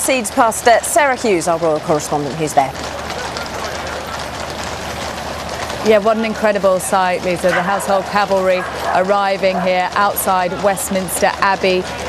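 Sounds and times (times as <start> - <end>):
horse hooves on paved road: 0.0 - 12.0
outdoor noise rush: 0.0 - 12.0.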